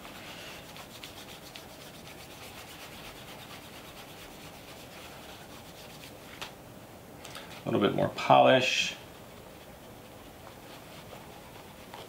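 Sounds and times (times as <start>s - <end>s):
cloth rubbing on leather: 0.0s - 6.4s, 9.0s - 12.0s.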